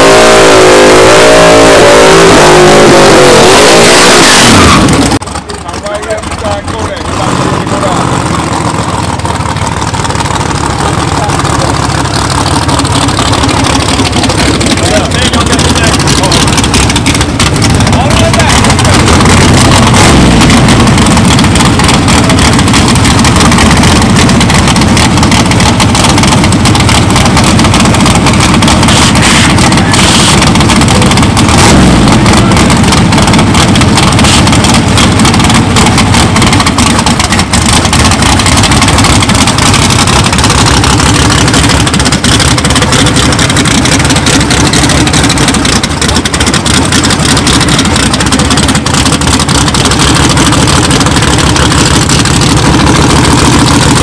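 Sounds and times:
loud car engine running: 0.0 - 54.0.

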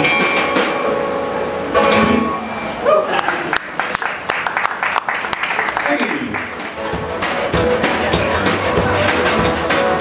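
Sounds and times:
drum kit: 0.0 - 2.8, 6.1 - 10.0.

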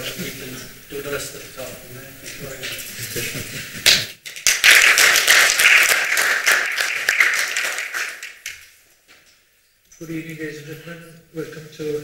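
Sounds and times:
audience applauding: 3.8 - 8.7.

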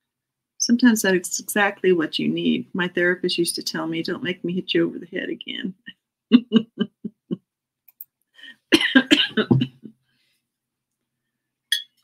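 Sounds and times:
woman laughing: 5.8 - 7.5, 8.5 - 9.9
woman coughing: 8.7 - 9.9.

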